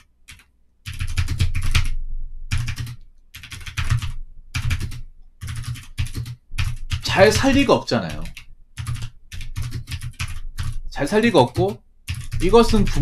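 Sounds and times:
typing on computer keyboard: 0.0s - 13.0s.

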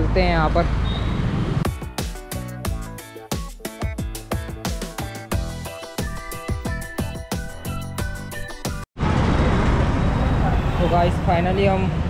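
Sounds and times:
street traffic rumble: 0.0s - 1.7s, 9.0s - 12.0s.

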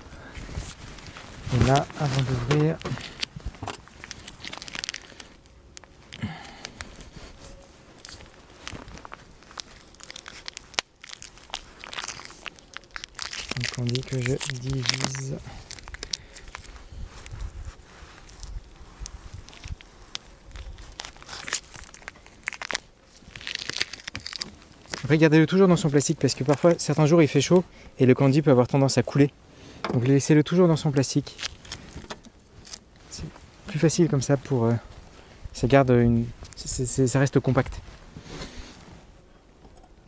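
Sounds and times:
plastic wrapping crinkling: 0.5s - 28.7s, 30.0s - 35.2s.

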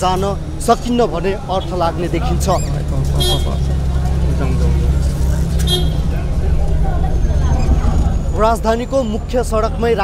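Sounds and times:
road traffic engine rumble: 0.0s - 10.0s.

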